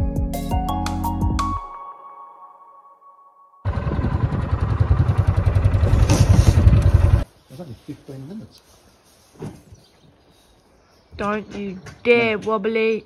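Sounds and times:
background music: 0.0 - 3.6
loud rough rumbling noise: 3.6 - 7.2.

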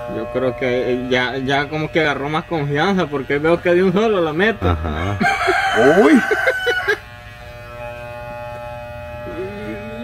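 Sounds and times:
electric hair clippers buzzing: 0.0 - 10.0
rooster crowing: 4.9 - 7.0.

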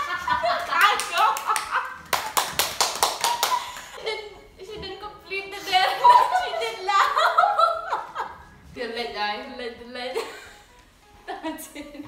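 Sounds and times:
quick hand claps: 0.6 - 4.0
young women laughing: 5.6 - 8.5.

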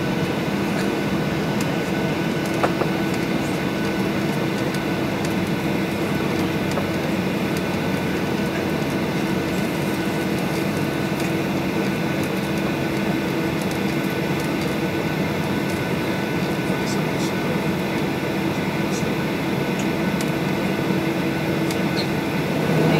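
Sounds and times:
jet engines idling: 0.0 - 22.9
steady hum: 0.0 - 22.9.

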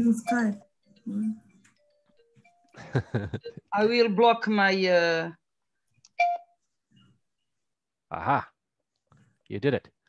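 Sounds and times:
short electronic beep: 6.2 - 6.5.

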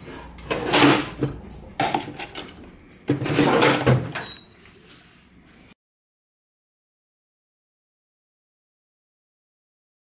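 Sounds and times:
tools rattling: 0.0 - 4.4.

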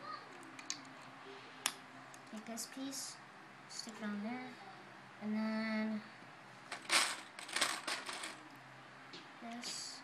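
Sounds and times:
plastic bricks clattering: 6.7 - 8.4.

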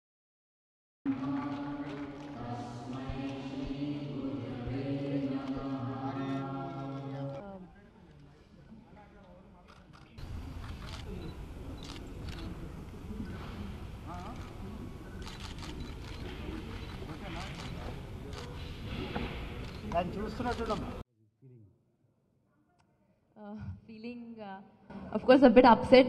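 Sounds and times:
voices chanting held tones: 1.1 - 7.6
crowded room noise: 1.1 - 21.0.

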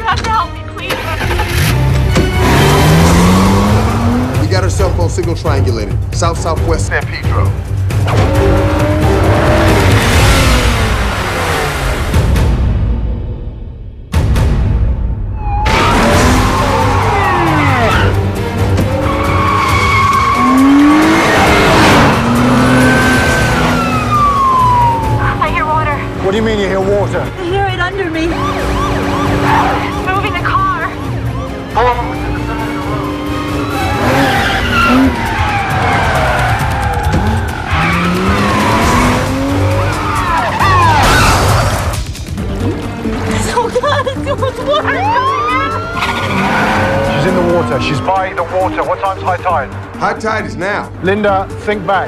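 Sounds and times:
car engine revving hard: 1.2 - 4.8, 8.0 - 12.4, 15.7 - 27.3, 32.3 - 42.0
tyre squeals and skids: 15.4 - 18.2, 18.8 - 24.4, 32.1 - 41.9, 45.0 - 48.4
police sirens warbling: 15.4 - 41.6, 43.9 - 49.8.

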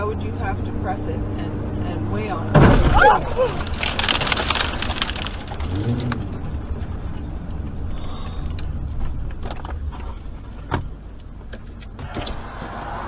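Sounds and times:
car road and engine rumble: 0.0 - 13.0.

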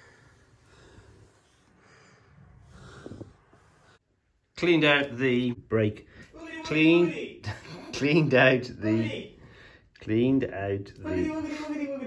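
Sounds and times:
faint breathing: 0.0 - 4.3, 9.4 - 10.0.

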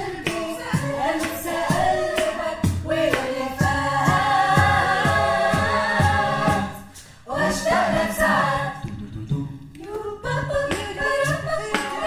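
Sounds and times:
choir singing sustained chords: 0.0 - 8.7.

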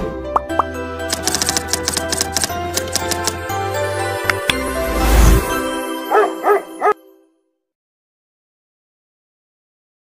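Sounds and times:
music: 0.0 - 7.8
dog barking: 6.1 - 7.0.

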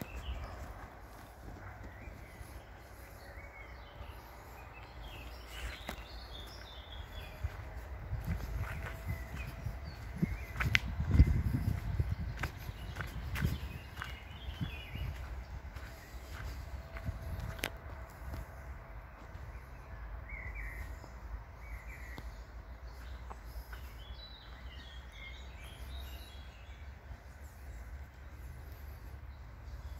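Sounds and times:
faint birds chirping: 0.0 - 29.9
footsteps on earth and twigs: 0.0 - 29.9.

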